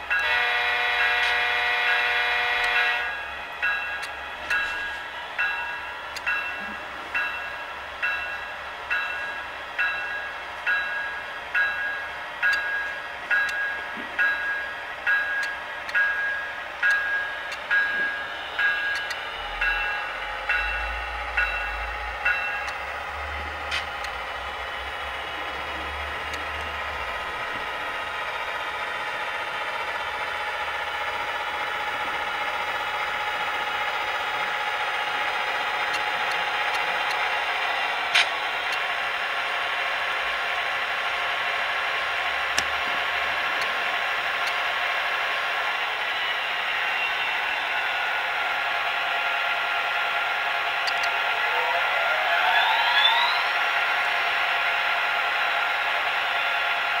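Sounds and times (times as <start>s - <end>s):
locomotive bell ringing: 0.0s - 23.5s
diesel engine sound: 14.8s - 57.0s.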